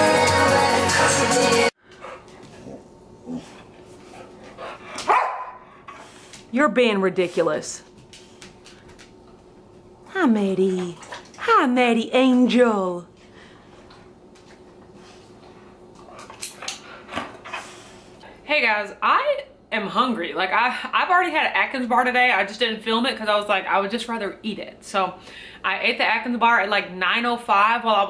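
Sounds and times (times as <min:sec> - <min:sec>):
dog barking: 0:05.0 - 0:05.6
dog claws clicking on floor: 0:07.9 - 0:09.4.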